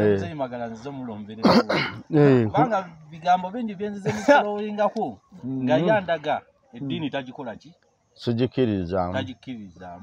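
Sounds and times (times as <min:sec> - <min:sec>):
man clearing throat: 0:01.4 - 0:02.2.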